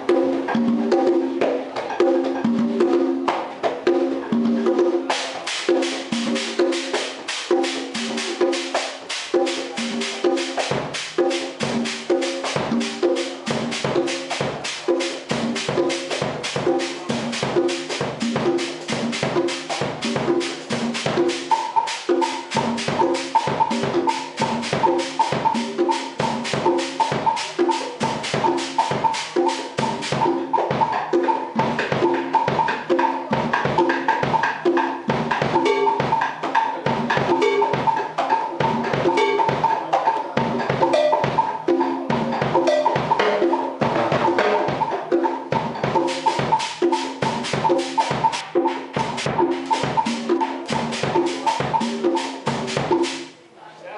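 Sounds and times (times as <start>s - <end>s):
clave pulse: 40.2s - 53.3s
hand strokes on congas: 45.6s - 53.3s
stick strokes on drum kit: 46.0s - 53.3s.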